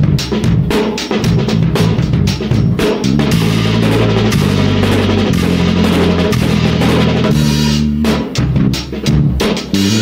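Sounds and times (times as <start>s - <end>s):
drum kit playing: 0.0s - 10.0s
electric bass guitar: 0.0s - 10.0s.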